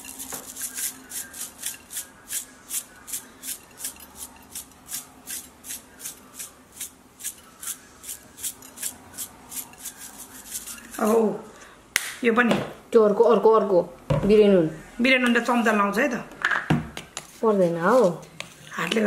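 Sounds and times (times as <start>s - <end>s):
spice shaker rattling: 0.0s - 11.3s.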